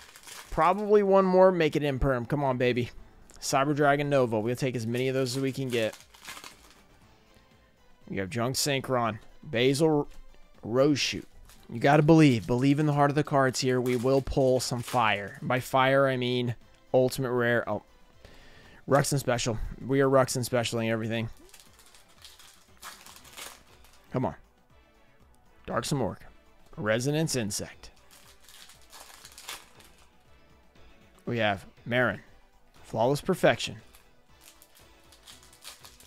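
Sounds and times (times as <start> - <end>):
foil pack and cards rustling: 0.0 - 1.7, 3.4 - 7.0, 8.7 - 16.4, 20.2 - 24.1, 26.9 - 30.2, 33.4 - 36.0
faint background music: 0.0 - 36.0.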